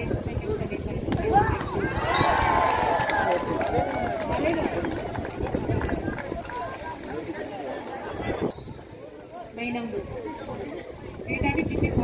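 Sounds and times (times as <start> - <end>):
crowd shouting and cheering: 1.1 - 11.2.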